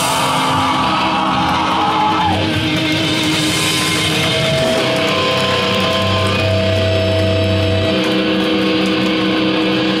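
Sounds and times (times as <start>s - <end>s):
sustained electric guitar notes: 2.4s - 10.0s.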